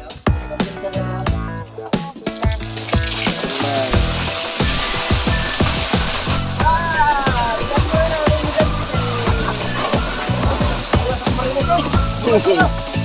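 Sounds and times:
background music with steady beat: 0.0s - 13.0s
ice water pouring: 2.2s - 13.0s.

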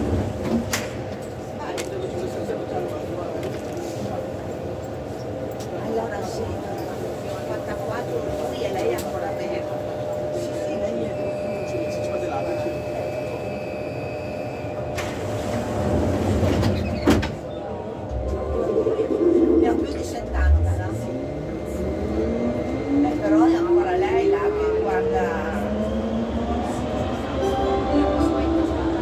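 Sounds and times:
train idling hum: 17.9s - 29.0s.

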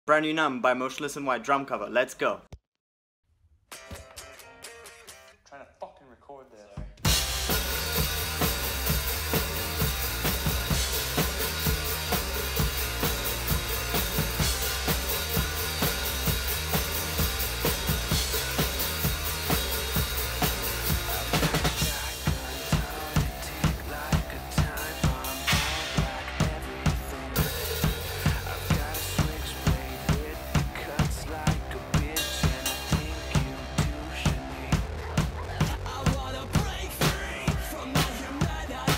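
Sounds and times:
acoustic drum kit playing: 6.9s - 38.9s
recorded metalcore song: 7.0s - 38.9s
crashing cymbals: 7.1s - 30.6s.

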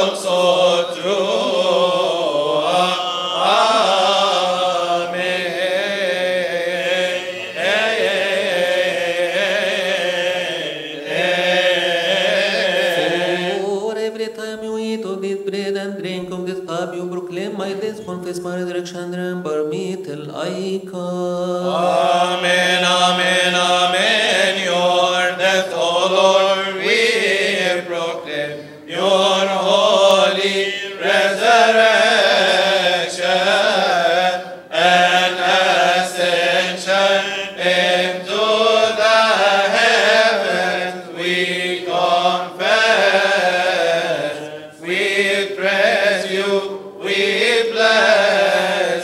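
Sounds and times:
men chanting a hymn: 0.0s - 14.2s, 19.8s - 49.0s.

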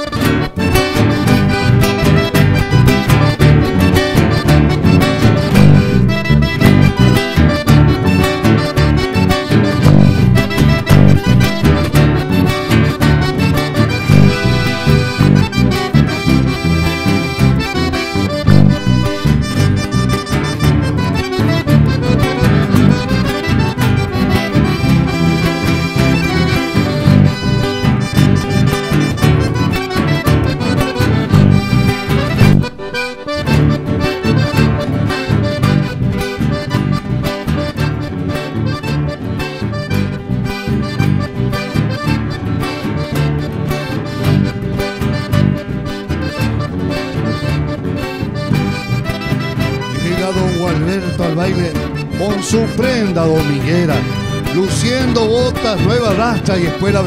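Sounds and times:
accordion: 0.0s - 57.0s
acoustic guitars: 0.0s - 57.0s
electric bass: 0.0s - 57.0s.

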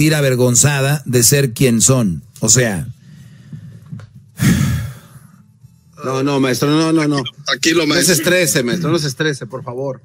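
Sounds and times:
man sighing heavily: 4.4s - 5.2s.

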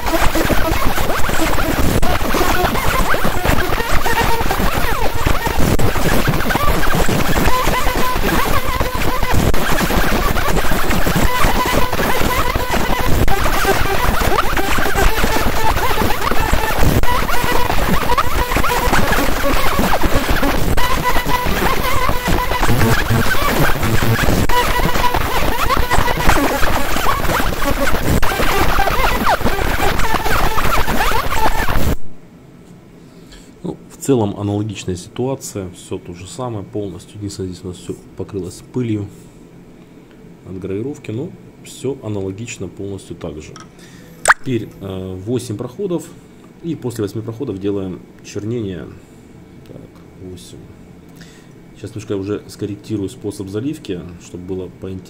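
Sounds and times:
laser engraving crackling hiss: 0.0s - 32.0s.

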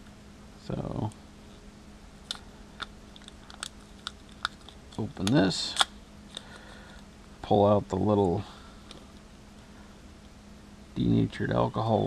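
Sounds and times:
wipe packet crinkling: 2.3s - 5.4s.

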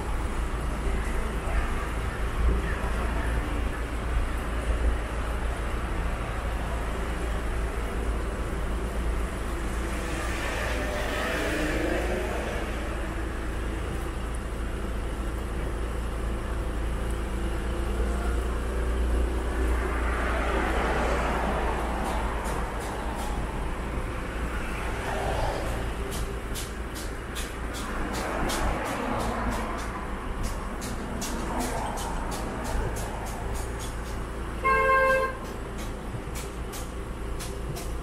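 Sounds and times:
cars rumbling on road: 0.0s - 38.0s
vehicle passing close by: 9.8s - 13.4s, 19.5s - 26.3s.

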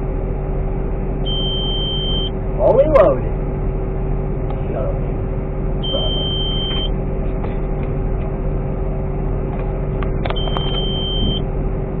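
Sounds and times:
harvester engine drone: 0.0s - 12.0s
high electronic beep: 5.8s - 6.9s, 10.4s - 11.4s.

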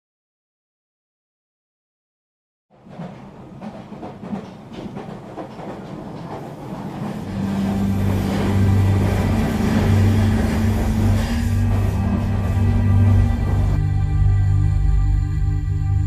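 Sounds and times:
train wheels clicking on rails: 2.7s - 13.8s.

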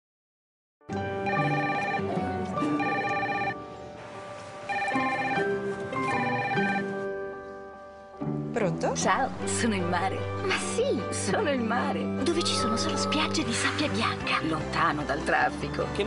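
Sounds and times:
music: 0.8s - 16.0s
telephone ringing: 1.2s - 3.6s, 4.7s - 7.0s.

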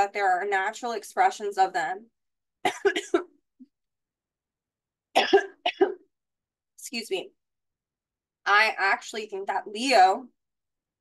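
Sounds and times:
woman coughing: 2.6s - 3.3s, 5.2s - 6.1s.

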